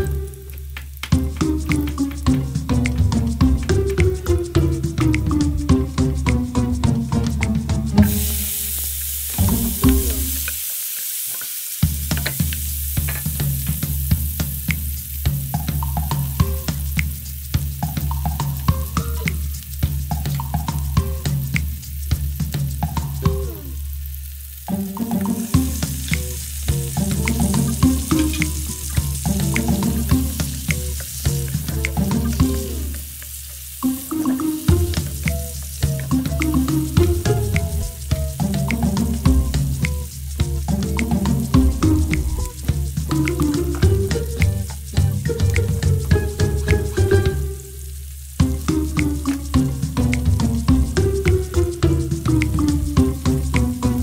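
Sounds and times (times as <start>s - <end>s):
garlic sizzling in hot oil: 0.0s - 54.0s.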